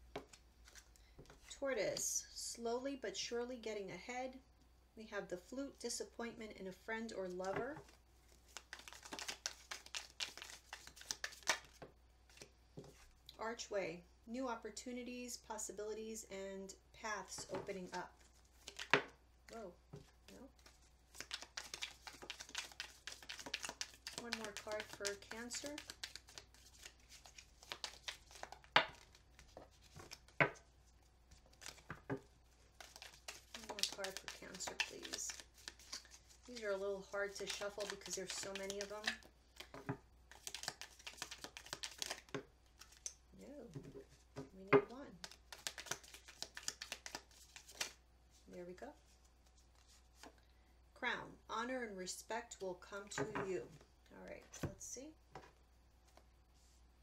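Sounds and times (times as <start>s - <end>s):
cards being shuffled: 0.1s - 1.5s, 7.5s - 13.1s, 17.4s - 19.1s, 19.9s - 30.7s, 31.3s - 43.2s, 45.1s - 48.0s.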